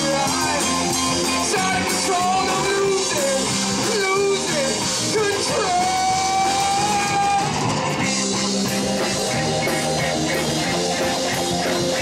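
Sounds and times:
person singing: 0.0s - 7.7s
live rock band playing: 0.0s - 12.0s.

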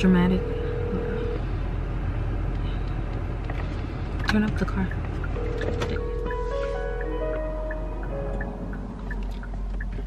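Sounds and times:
car road and engine noise: 0.0s - 10.0s.

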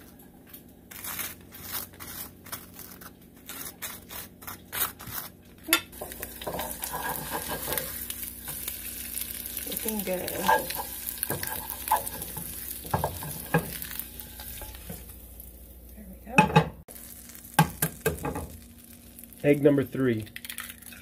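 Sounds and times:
egg sizzling in a skillet: 5.9s - 16.0s, 16.8s - 21.0s
knife scraping butter on toast: 6.4s - 7.9s.

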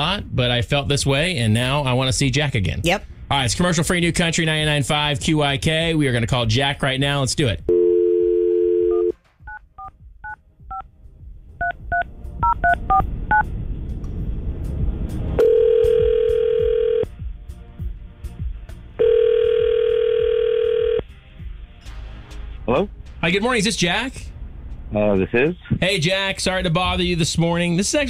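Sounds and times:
telephone dial tone: 7.7s - 9.1s, 15.4s - 17.1s, 19.0s - 21.0s
telephone line ringing: 7.7s - 9.6s, 15.4s - 17.1s, 19.0s - 21.0s.

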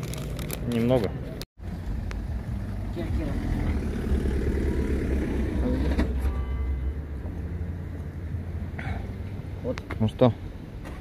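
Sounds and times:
vehicle engine rumbling: 0.0s - 11.0s.

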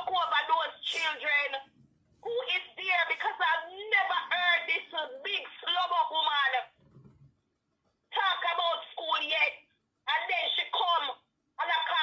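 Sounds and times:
woman talking: 0.0s - 6.7s, 8.1s - 12.0s.

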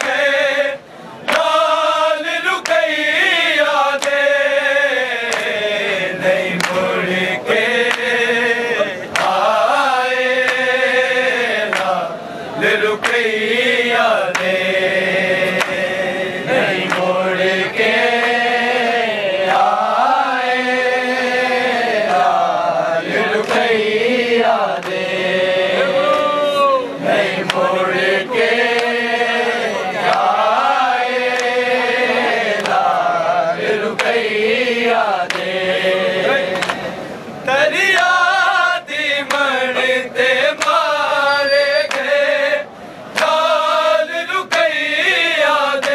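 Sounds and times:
men chanting a lament: 0.0s - 45.9s.

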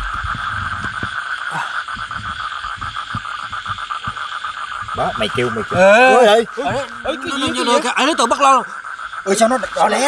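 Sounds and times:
soft low thumps: 0.0s - 7.7s
frogs trilling: 0.0s - 10.0s.

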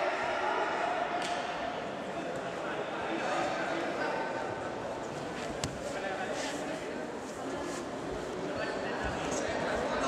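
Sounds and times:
indistinct voices in a hall: 0.0s - 10.0s.

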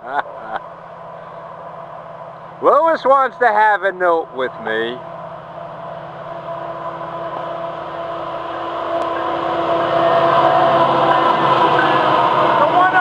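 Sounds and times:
diesel locomotive engines droning: 0.0s - 13.0s.

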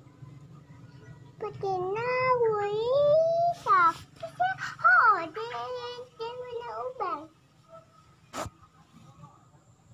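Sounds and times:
child singing: 1.4s - 7.3s.

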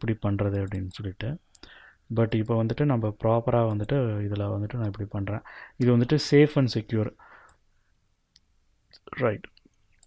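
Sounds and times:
man speaking: 0.0s - 1.4s, 2.1s - 7.2s, 9.0s - 9.6s.

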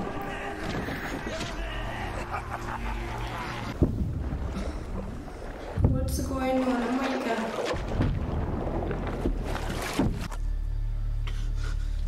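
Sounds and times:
steady low rumble: 3.7s - 6.4s.

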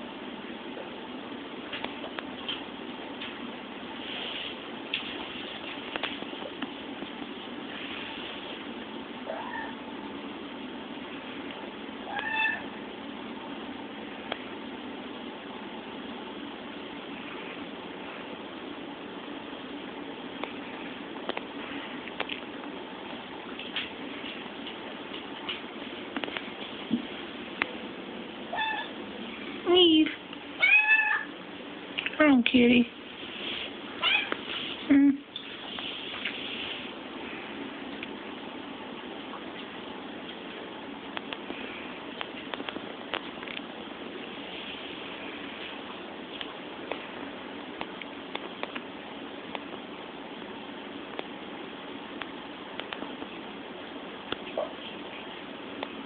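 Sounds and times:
background hiss: 0.0s - 56.0s
kitten meowing: 9.3s - 9.8s, 12.1s - 12.7s, 28.5s - 28.9s, 30.6s - 31.3s, 34.0s - 34.3s.

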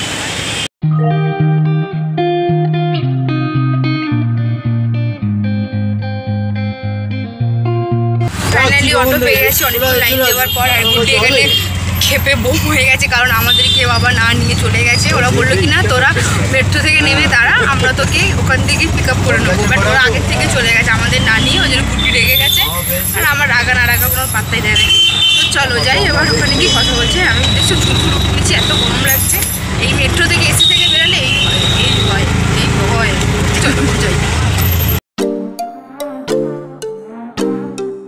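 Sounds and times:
auto-rickshaw engine droning: 8.3s - 35.0s
people talking: 8.4s - 34.3s.

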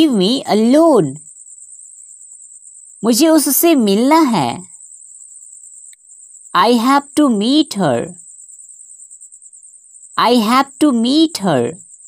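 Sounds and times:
person speaking: 0.0s - 1.2s, 3.0s - 4.6s, 6.6s - 8.2s, 10.2s - 11.8s.

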